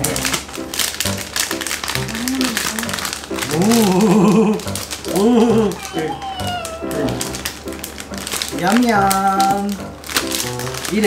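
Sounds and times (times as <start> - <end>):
background music: 0.0 - 11.0
plastic snack bags crackling: 0.0 - 11.0.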